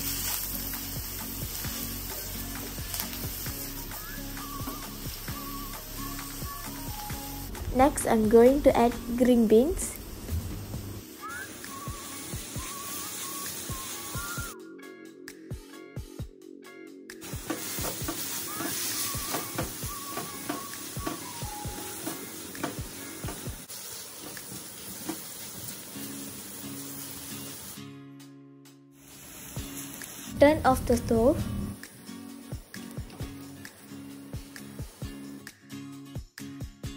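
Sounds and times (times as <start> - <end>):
vegetables sizzling in oil: 0.0 - 14.6, 17.2 - 27.9, 29.0 - 35.5
soft background music: 0.0 - 36.9.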